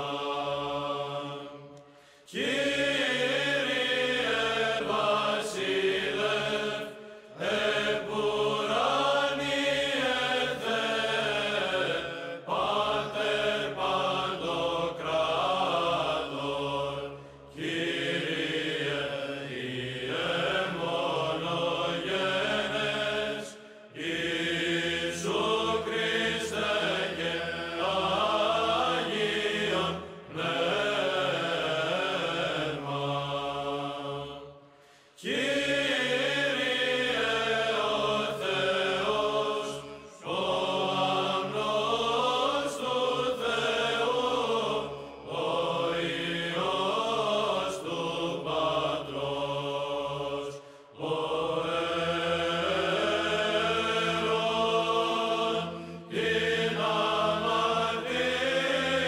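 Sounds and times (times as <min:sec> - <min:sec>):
person chanting: 0:02.3 - 0:34.5, 0:35.2 - 0:59.0.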